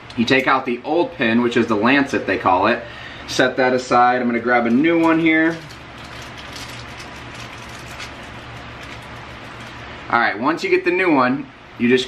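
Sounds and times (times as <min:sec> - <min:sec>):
low background hum: 0:00.0 - 0:12.0
plastic rustling: 0:04.7 - 0:09.9.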